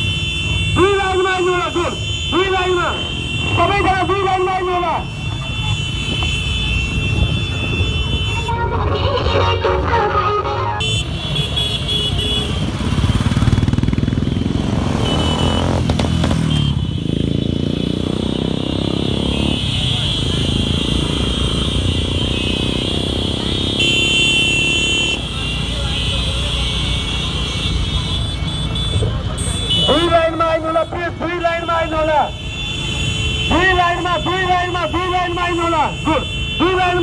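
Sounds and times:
motorcycles riding past: 11.0 - 30.7.

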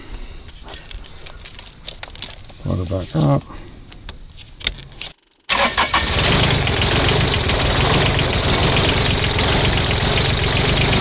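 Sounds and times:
metallic clicks and rattles: 0.9 - 2.6.

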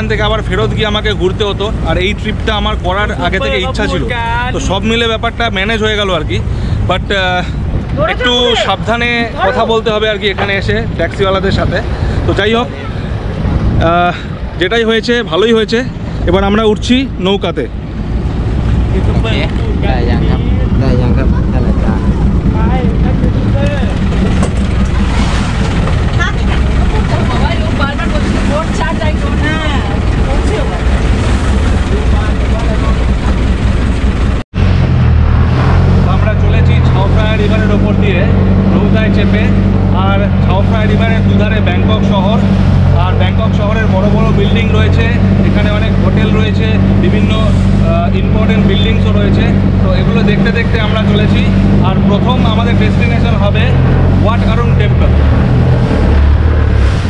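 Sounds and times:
boat engine drone: 0.0 - 57.0
water noise: 0.0 - 57.0.

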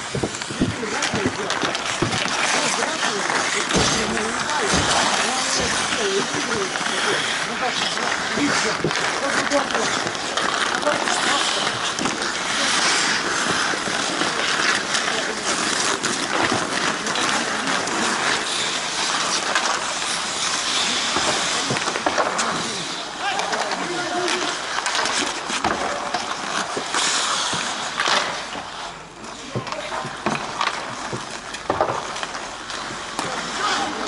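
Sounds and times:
hockey sticks and puck clacking: 0.0 - 34.0
skates scraping on ice: 0.0 - 34.0.

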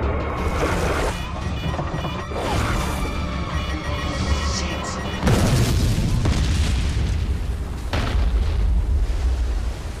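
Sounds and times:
sharp explosion blast: 5.2 - 9.0
deep booming explosions: 5.2 - 9.8.

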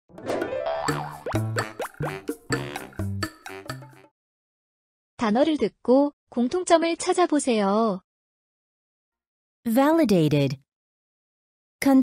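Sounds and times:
upbeat intro jingle: 0.1 - 4.1
cartoon boing: 0.6 - 3.0.

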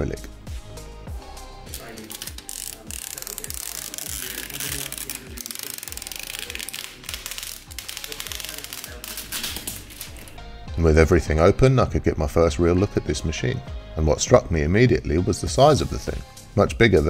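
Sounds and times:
background music with beat: 0.0 - 17.0
plastic film peeling crackle: 1.7 - 10.4.

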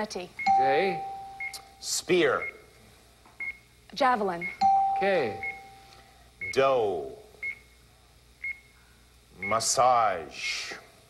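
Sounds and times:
countdown clock high beeps: 0.4 - 1.8, 4.4 - 5.8.

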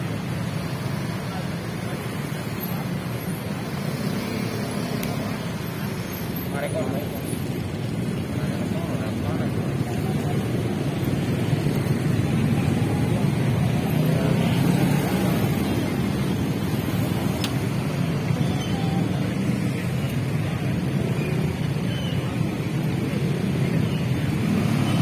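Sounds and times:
people's voices: 0.0 - 25.0
road traffic: 0.0 - 25.0.

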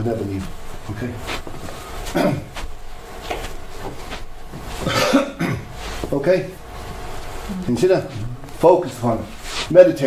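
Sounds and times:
person coughing: 4.8 - 5.7.

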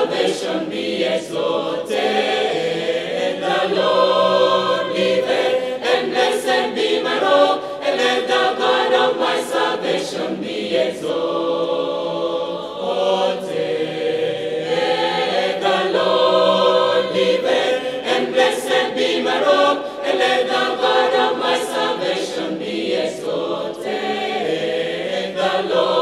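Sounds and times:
mixed choir singing a hymn: 0.0 - 26.0.

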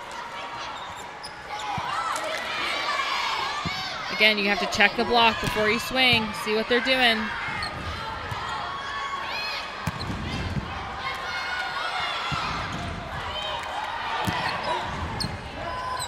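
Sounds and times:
sneakers squeaking: 0.6 - 2.1, 9.8 - 10.7, 14.2 - 16.0.

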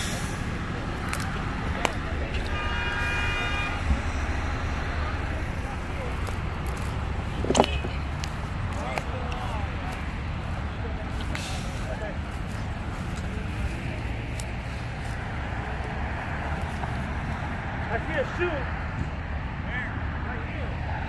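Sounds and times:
distant voices talking: 0.0 - 21.0
low rumble of vehicles: 0.0 - 21.0
brush snapping underfoot: 0.8 - 2.6, 5.7 - 15.3.

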